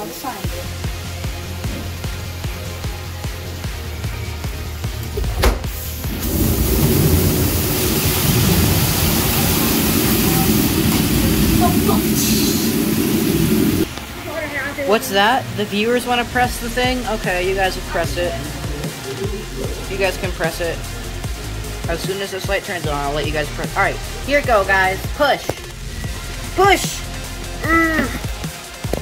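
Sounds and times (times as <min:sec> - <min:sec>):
background music: 0:00.0 - 0:29.0
loud rumbling noise: 0:05.0 - 0:14.6.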